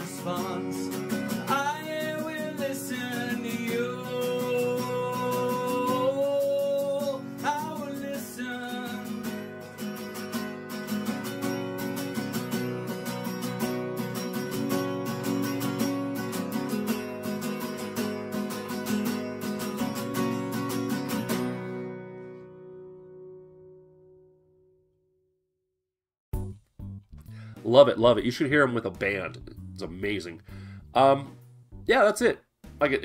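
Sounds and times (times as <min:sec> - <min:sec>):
man singing: 0:00.0 - 0:09.6
strummed acoustic guitar: 0:00.0 - 0:24.1.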